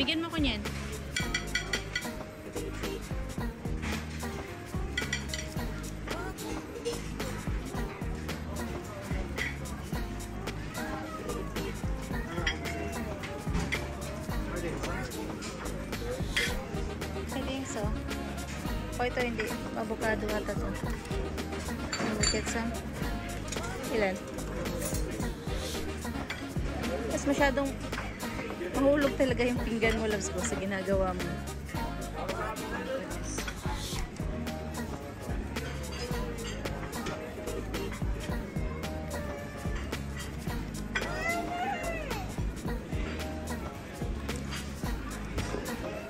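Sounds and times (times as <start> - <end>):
background music: 0.0 - 46.0
voices: 0.0 - 46.0
metal tongs and dishes clinking: 0.8 - 2.2, 5.0 - 7.4, 9.3 - 9.9, 12.2 - 16.8, 19.2 - 19.7, 20.4 - 30.7, 35.5 - 38.0, 39.7 - 41.4
serving tongs clinking on plates: 1.0 - 2.2, 5.0 - 5.6, 9.4 - 9.8, 16.3 - 16.6, 21.7 - 22.6.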